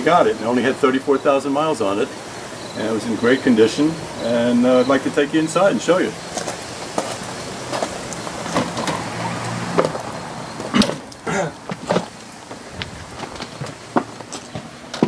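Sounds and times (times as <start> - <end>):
footsteps on wooden steps: 6.3 - 9.1, 9.7 - 15.0.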